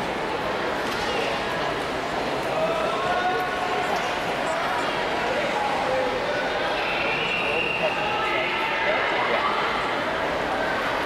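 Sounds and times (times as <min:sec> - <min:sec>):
echoing crowd chatter: 0:00.0 - 0:11.0.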